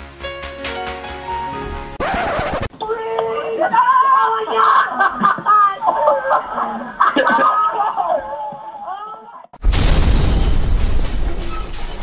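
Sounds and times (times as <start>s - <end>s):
kids shouting and laughing: 2.8s - 9.5s.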